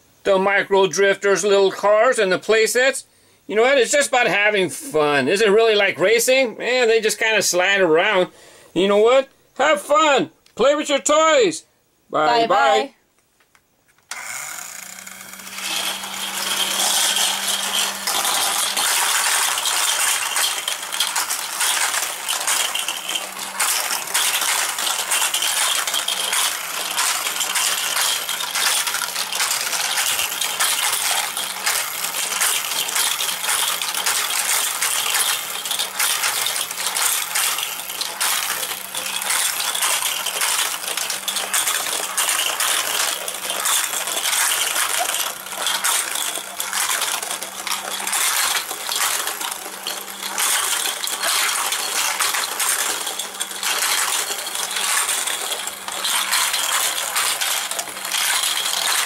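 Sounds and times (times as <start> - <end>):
toy cars rattling down plastic track: 0.4 - 10.1, 14.1 - 59.0.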